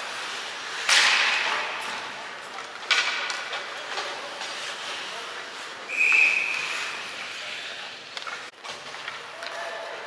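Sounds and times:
ice skates scraping on ice: 0.0 - 0.9, 3.6 - 10.0.

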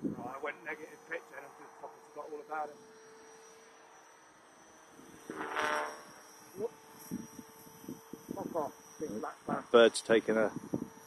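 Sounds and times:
distant rc helicopter whine: 0.0 - 11.0.

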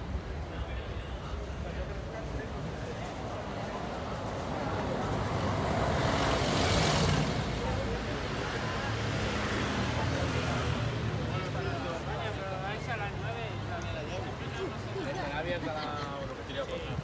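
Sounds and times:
vehicle passing by: 4.3 - 11.1.

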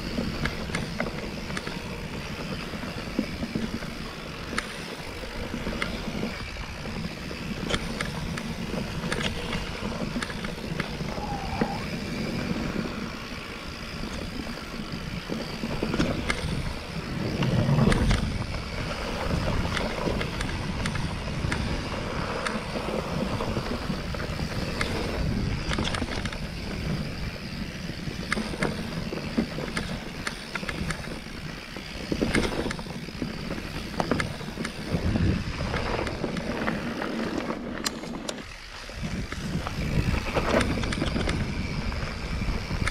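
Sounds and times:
bike rattling and knocking: 0.0 - 42.9
bike tyres rumbling on dirt: 0.0 - 42.9
wind on microphone: 5.8 - 13.2, 14.0 - 42.9.

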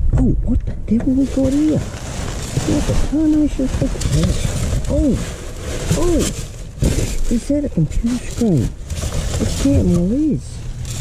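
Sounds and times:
plastic packaging rustling: 1.1 - 11.0.

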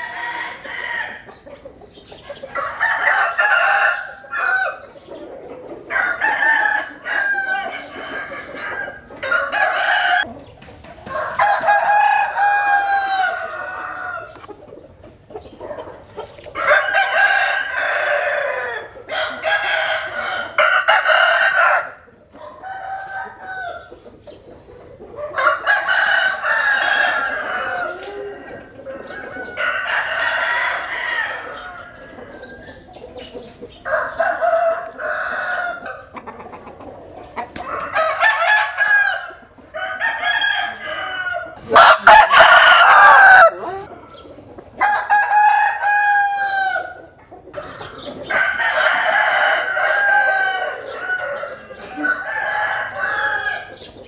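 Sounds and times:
roosters crowing: 0.0 - 1.5, 2.1 - 14.5, 16.4 - 24.0, 24.9 - 36.4, 37.4 - 54.0.

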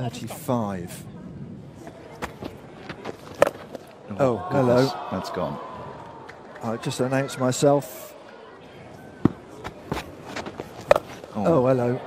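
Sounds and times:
faint ground ambience: 0.0 - 12.0.

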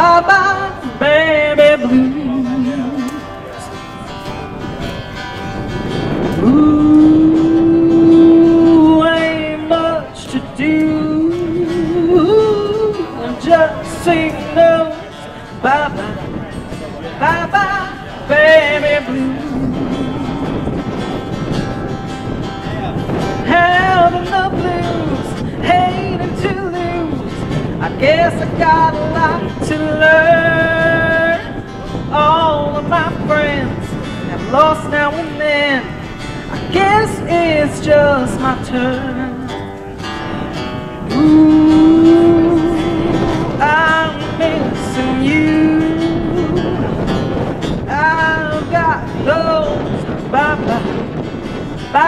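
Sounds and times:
acoustic guitar strumming: 0.0 - 52.0.

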